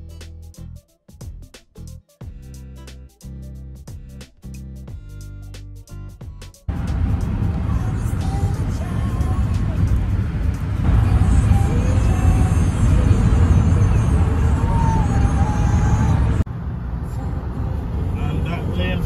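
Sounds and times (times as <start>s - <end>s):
music with singing voice: 0.0s - 16.5s
road noise inside a car: 6.7s - 19.0s.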